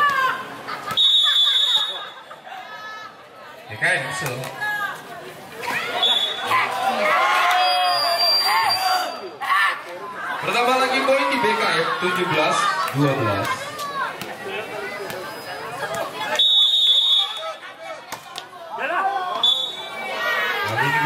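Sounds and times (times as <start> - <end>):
referee's whistle: 0.9 - 2.2, 6.0 - 6.5, 7.6 - 9.3, 16.3 - 17.6, 19.4 - 19.9
people shouting: 17.0 - 21.0.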